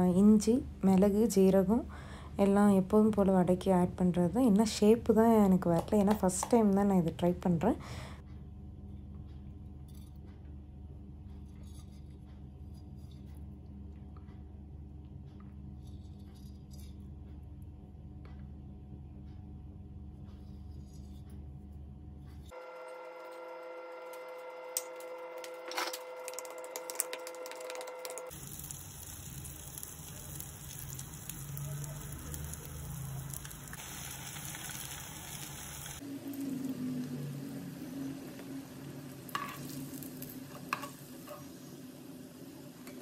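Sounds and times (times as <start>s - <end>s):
batter sizzling in hot oil: 22.6s - 43.0s.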